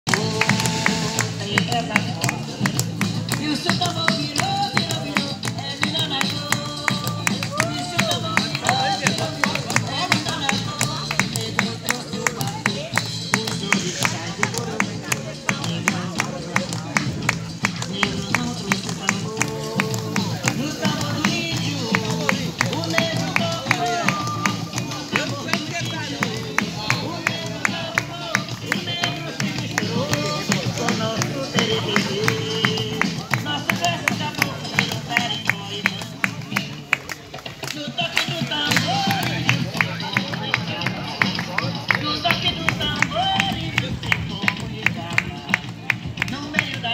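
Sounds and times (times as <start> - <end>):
drums beating a fast rhythm: 0.1 - 46.9.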